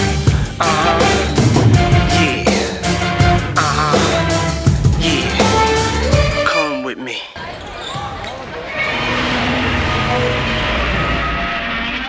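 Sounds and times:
crowd noise: 3.6s - 12.0s.

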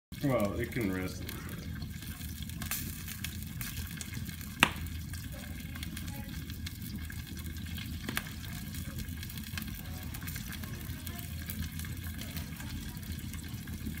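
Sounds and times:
wood fire crackling: 0.1s - 14.0s
sharp pop from fire: 4.6s - 4.9s.

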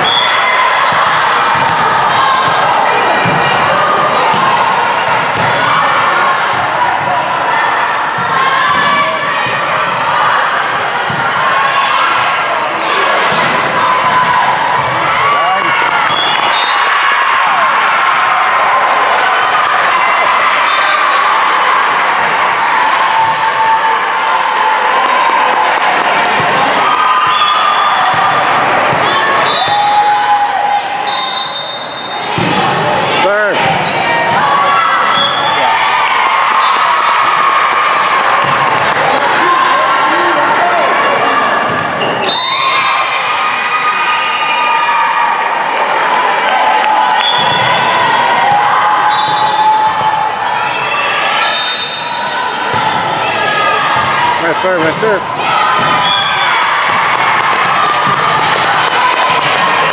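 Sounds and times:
volleyball hits: 0.1s - 5.8s, 8.1s - 10.0s, 11.0s - 12.4s, 13.0s - 16.6s, 24.6s - 30.0s, 31.9s - 39.5s, 52.7s - 53.1s, 55.7s - 59.9s
sneakers squeaking on court: 13.4s - 16.4s, 57.6s - 58.5s.

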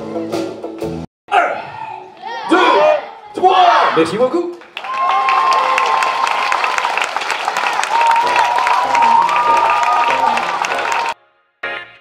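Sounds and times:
audience applauding and cheering: 4.6s - 11.2s.

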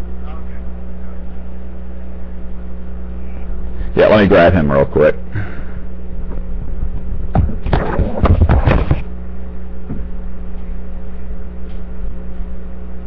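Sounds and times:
steady electrical hum: 0.0s - 13.0s
microphone handling bumps and rustling: 6.2s - 9.2s.

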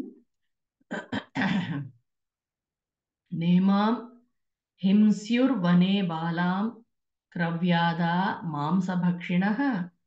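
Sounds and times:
person clearing throat: 0.9s - 1.9s.

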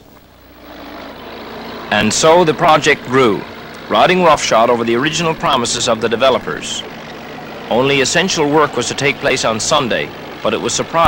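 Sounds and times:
heavy machine engine running: 0.0s - 11.0s.

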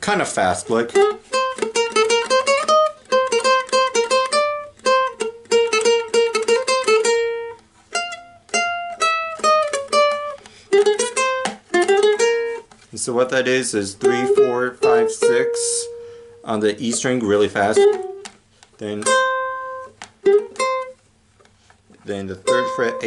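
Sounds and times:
ukulele picking melody: 0.6s - 21.0s, 21.9s - 23.0s.

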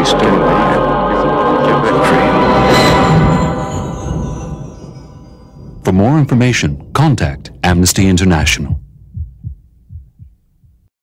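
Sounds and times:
soft low thumps in pairs: 8.4s - 10.9s.

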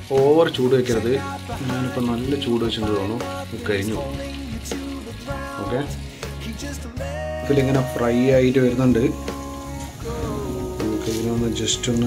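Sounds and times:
background music: 0.0s - 12.0s
food deep-frying in oil: 0.0s - 12.0s.

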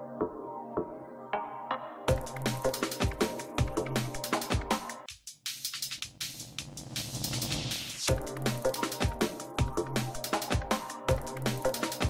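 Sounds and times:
electronic music: 0.0s - 12.0s
steady drum beat: 2.1s - 12.0s.

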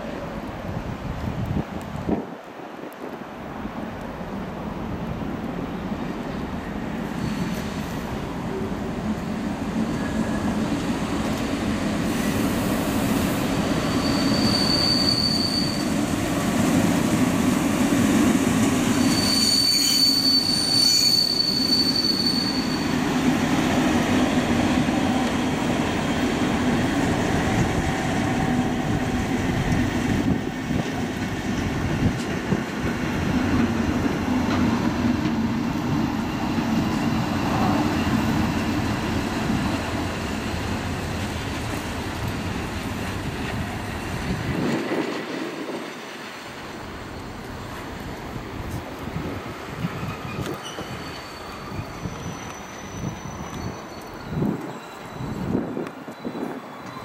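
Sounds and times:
train wheels squealing: 6.6s - 8.2s, 9.7s - 16.4s, 18.7s - 26.8s, 46.8s - 48.1s, 49.7s - 57.0s
diesel locomotive engine drone: 21.8s - 57.0s.

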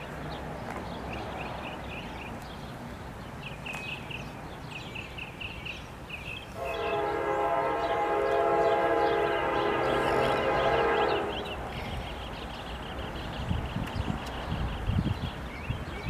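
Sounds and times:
locomotive horn blast: 6.6s - 11.7s.

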